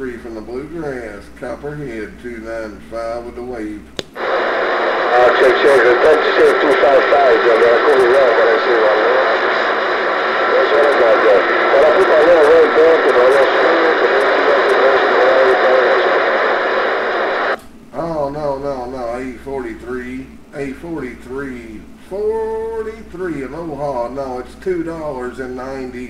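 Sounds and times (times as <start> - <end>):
radio static: 4.2 - 17.6
voice over cb radio: 4.2 - 17.6.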